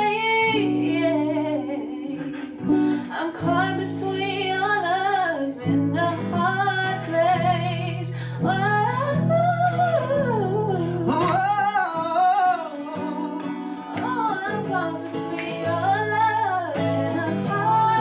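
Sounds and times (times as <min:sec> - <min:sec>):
strummed acoustic guitar: 0:00.0 - 0:18.0
woman and man singing: 0:00.0 - 0:18.0.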